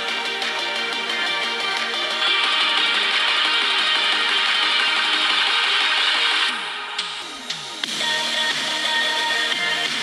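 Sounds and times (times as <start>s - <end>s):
electronic music through phone speaker: 0.0s - 10.0s.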